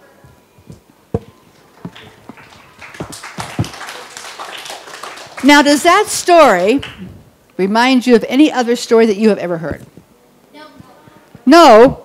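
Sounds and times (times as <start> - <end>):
book knocking on wooden shelf: 1.1 - 1.4.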